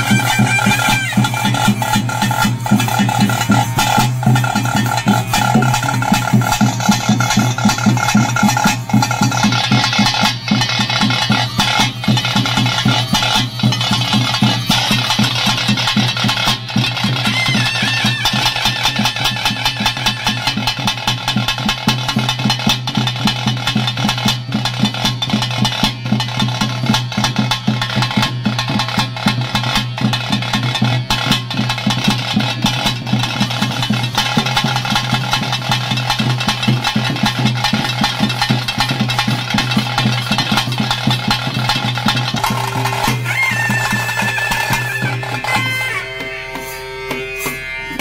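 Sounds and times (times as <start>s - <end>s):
fast ritual drumming: 0.0s - 48.0s.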